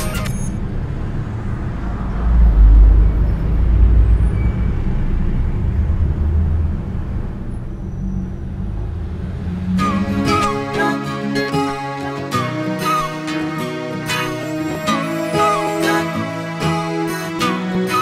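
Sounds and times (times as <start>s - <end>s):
low engine rumble: 0.0s - 11.4s.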